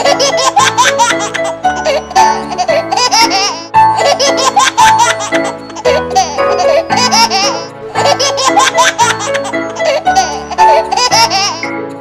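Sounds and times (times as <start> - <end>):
baby laughing and giggling: 0.0 - 11.7.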